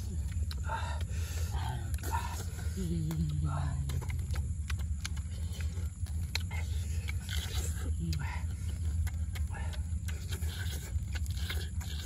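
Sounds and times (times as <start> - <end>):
greens being bitten and chewed: 0.0 - 12.0
low rumble: 0.0 - 12.0.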